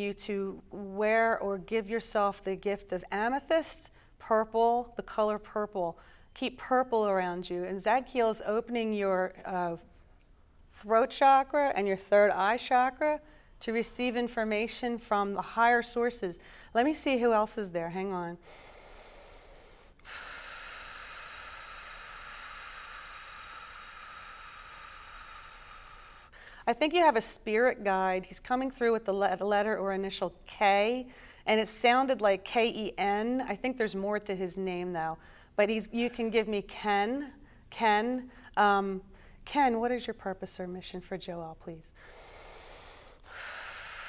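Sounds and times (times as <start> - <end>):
long hissing breath: 18.4 - 26.6, 42.0 - 44.0.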